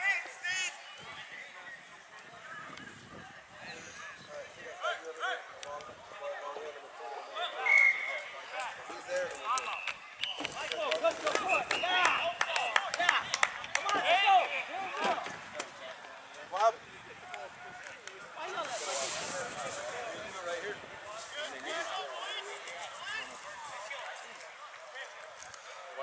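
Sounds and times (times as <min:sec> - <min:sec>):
shouting and chatter: 0:00.0 - 0:26.0
brief hiss of noise: 0:18.6 - 0:19.9.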